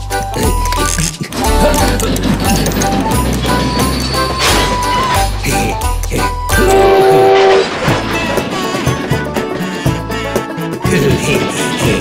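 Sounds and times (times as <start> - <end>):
background music: 0.0 - 12.0
train noise: 1.2 - 12.0
cartoon locomotive whistle: 2.8 - 9.0.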